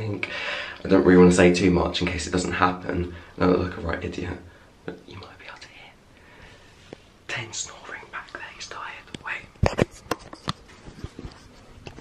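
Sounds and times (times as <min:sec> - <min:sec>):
man whispering: 0:02.0 - 0:06.0, 0:07.3 - 0:09.8.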